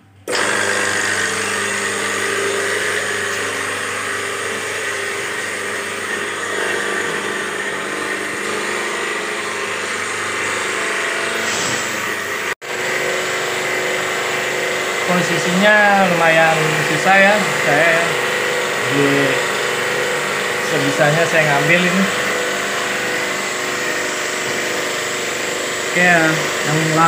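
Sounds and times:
pressure washer pump motor hum: 0.0s - 27.0s.

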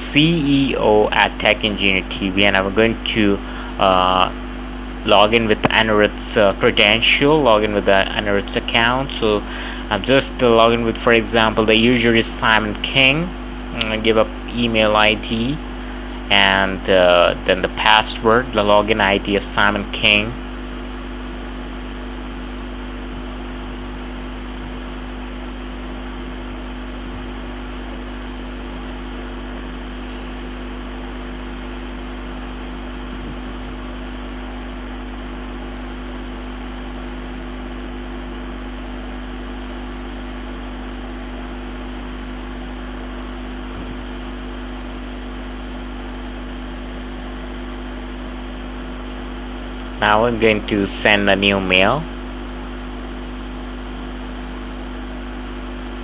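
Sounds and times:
low electrical hum: 0.0s - 56.0s.

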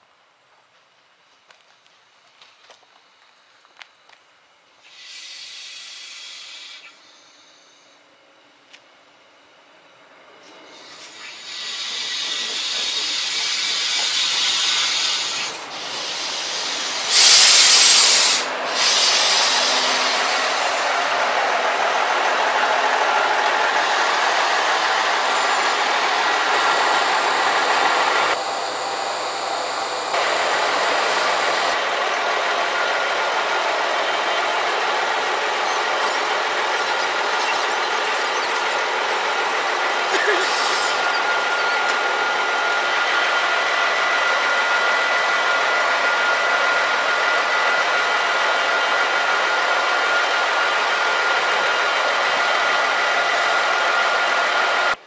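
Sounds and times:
diesel train engine and rail noise: 0.0s - 55.0s
thin high whine: 4.8s - 55.0s.

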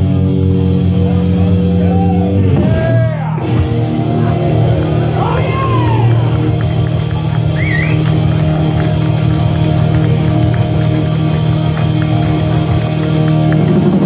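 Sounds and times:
bass guitar: 0.0s - 14.0s
electric guitar: 0.0s - 14.0s.

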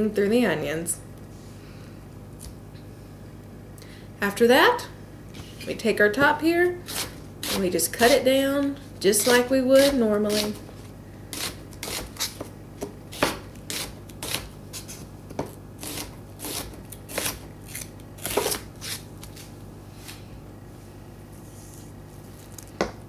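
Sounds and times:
knife chopping on wooden board: 11.4s - 14.5s.

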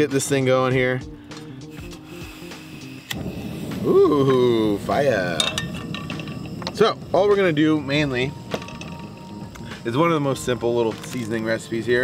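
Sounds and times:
gas burner hissing: 0.0s - 12.0s
stove igniter click: 3.0s - 10.1s, 10.8s - 11.5s.

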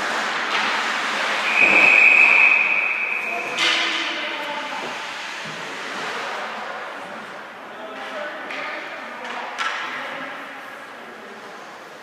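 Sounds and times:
arena crowd noise: 0.9s - 12.0s
referee's whistle blast: 1.4s - 3.7s.

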